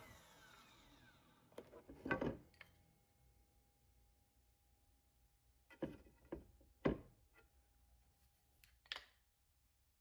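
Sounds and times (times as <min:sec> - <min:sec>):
wood knocking on workbench: 0:05.8 - 0:07.1.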